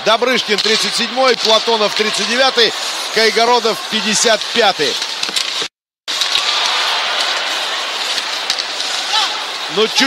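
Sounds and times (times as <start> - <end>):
crowd noise: 0.0 - 10.0
skates scraping ice: 0.2 - 10.0
hockey sticks and puck clicking: 0.4 - 2.5, 4.0 - 10.0.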